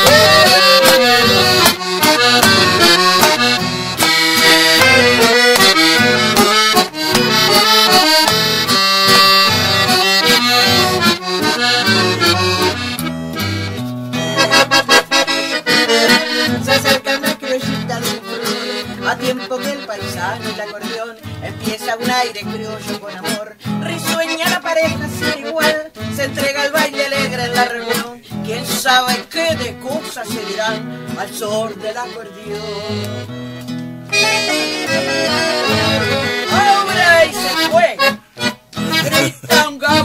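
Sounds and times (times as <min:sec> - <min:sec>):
bouncing bass: 0:00.0 - 0:16.8
accordion playing: 0:00.0 - 0:40.0
strummed guitar: 0:00.0 - 0:40.0.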